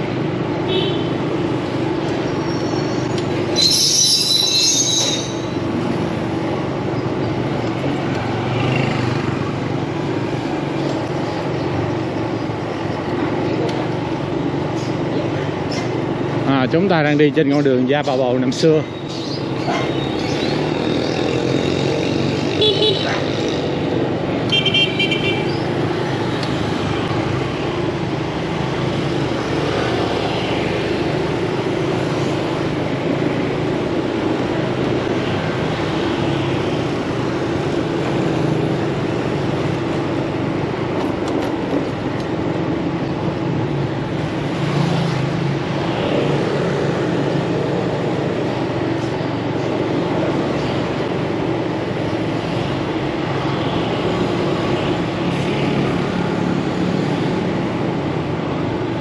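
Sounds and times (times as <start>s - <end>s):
city street traffic: 0.0s - 59.0s
vehicle horn beeps: 24.5s - 25.5s.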